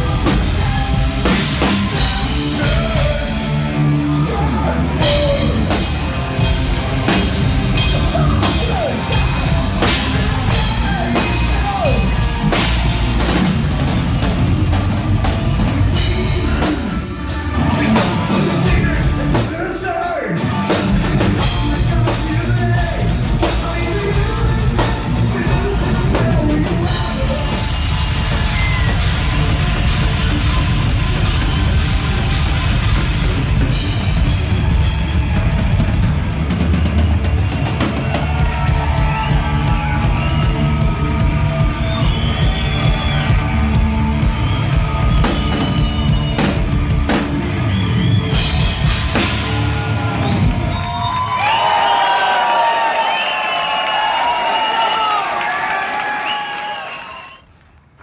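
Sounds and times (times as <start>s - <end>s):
heavy metal band playing live: 0.0s - 51.3s.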